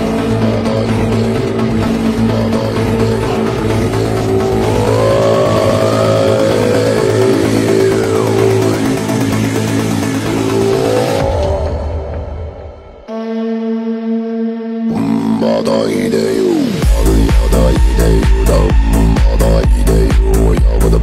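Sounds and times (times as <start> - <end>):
electronic dance music: 0.0 - 12.0, 14.9 - 21.0.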